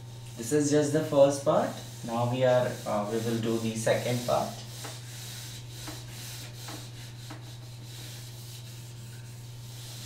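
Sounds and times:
eraser wiping whiteboard: 0:00.3 - 0:10.0.

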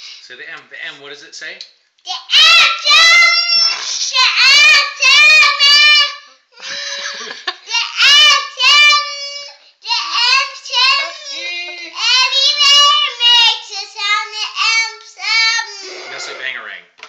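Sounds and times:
little girl singing loudly: 0:02.1 - 0:06.3, 0:07.7 - 0:16.4.

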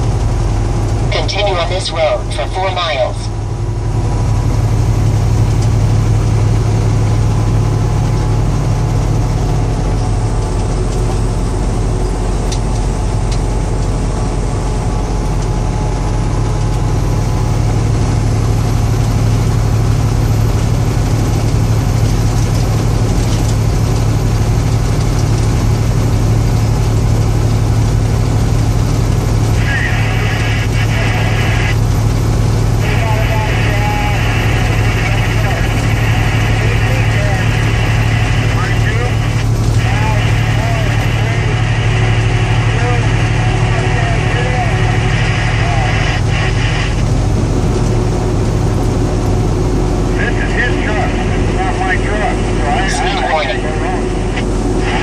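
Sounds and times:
road and wind noise: 0:00.0 - 0:33.0, 0:34.2 - 0:55.0
low engine hum: 0:00.0 - 0:55.0.

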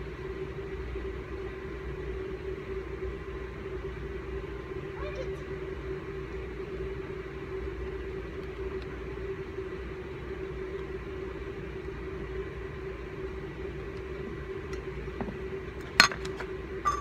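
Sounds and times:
steady mechanical hum: 0:00.0 - 0:17.0.

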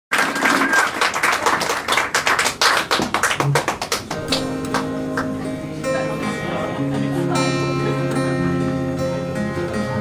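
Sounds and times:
audience clapping: 0:00.1 - 0:05.7.

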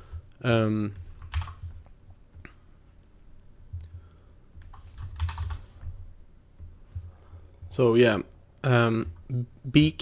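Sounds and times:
low steady hum: 0:00.0 - 0:10.0
computer keyboard clacking: 0:01.2 - 0:01.6, 0:04.6 - 0:05.6.

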